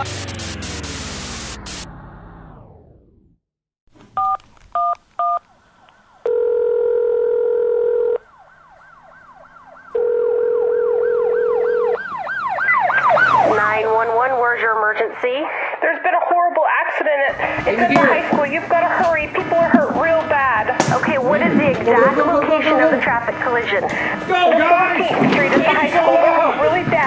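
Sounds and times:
loud noise: 0.0s - 3.4s
telephone ringback tone: 6.3s - 8.2s, 10.0s - 12.0s
emergency vehicle sirens wailing: 8.2s - 15.3s.

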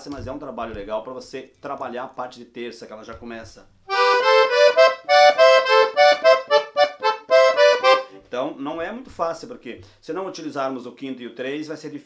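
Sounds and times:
piano accordion melody: 3.9s - 8.3s.

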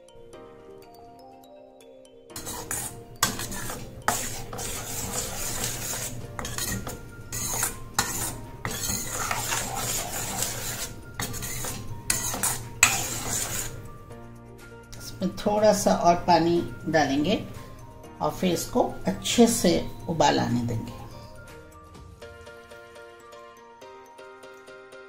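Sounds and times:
spoon clinking on pan: 2.4s - 13.8s
spoon stirring soup in pan: 2.4s - 14.0s.

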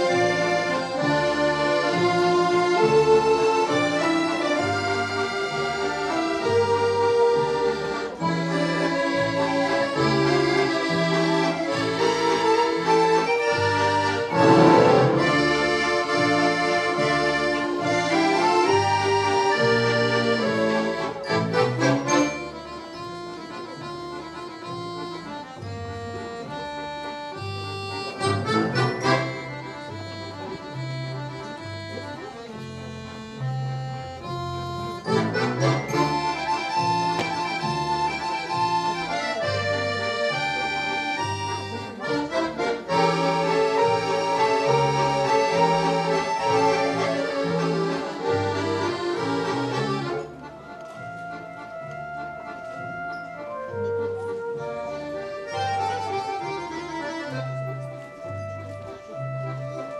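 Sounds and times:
accordion ensemble playing: 0.0s - 59.9s.

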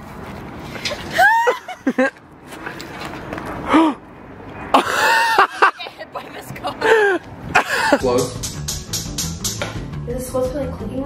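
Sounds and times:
outdoor background noise: 0.0s - 11.0s
woman laughing and squealing: 0.8s - 2.2s, 4.8s - 8.0s.

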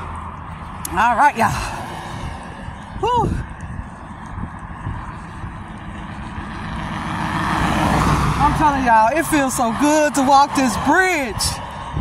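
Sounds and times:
car approaching: 0.0s - 12.0s.

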